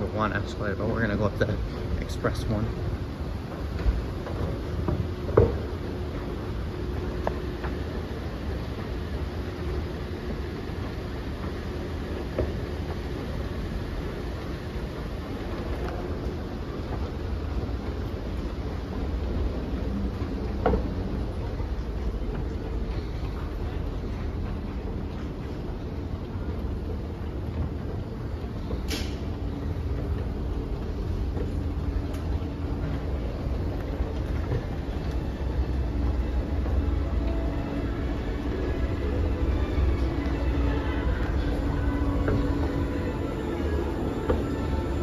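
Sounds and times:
escalator rumble: 0.0 - 45.0.

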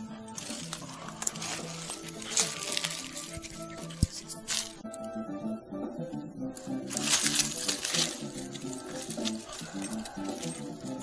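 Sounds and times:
plucked guitar music: 0.0 - 11.0
dry brush and leaves rustling: 0.4 - 4.8, 6.6 - 11.0.

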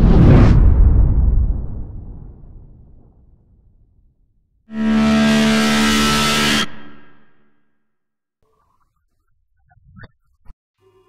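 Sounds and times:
deep whoosh: 0.0 - 4.1.

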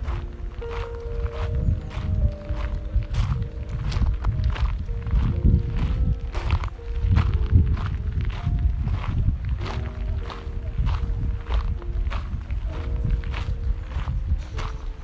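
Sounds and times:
faint background tune: 0.0 - 15.0
footsteps on gravel: 0.0 - 15.0.

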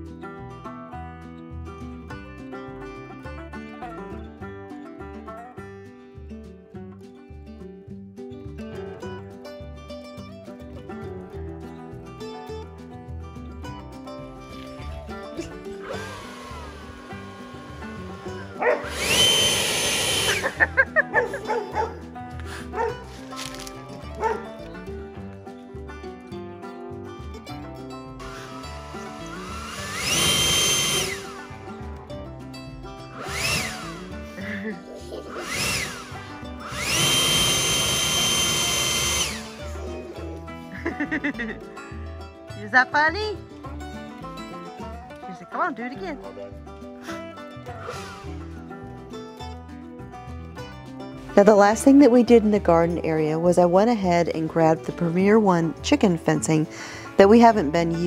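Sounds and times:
background music: 0.0 - 58.0
leaf blower blasts: 15.4 - 24.5, 28.1 - 31.8, 33.0 - 40.0, 47.0 - 48.6.

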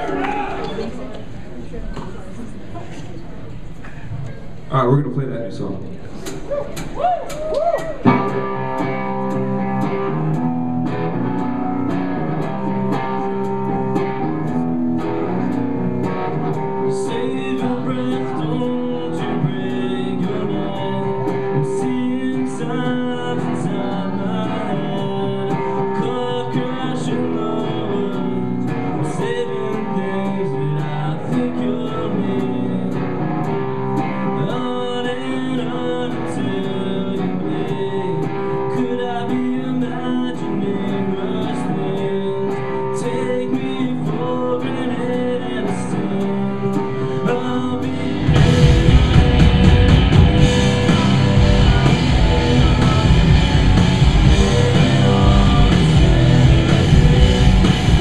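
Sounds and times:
rock band with drums: 6.2 - 58.0
electric guitars playing melody: 8.0 - 58.0.

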